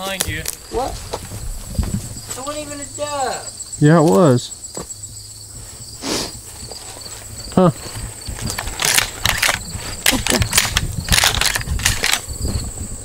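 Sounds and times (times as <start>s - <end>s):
insects chirping: 0.0s - 13.0s.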